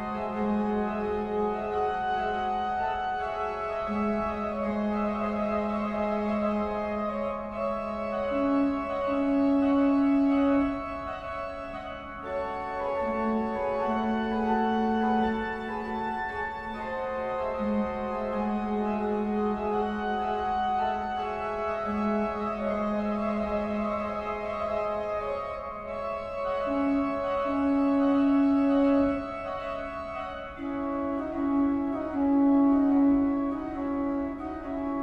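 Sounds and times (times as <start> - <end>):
slow organ music: 0.0 - 35.0.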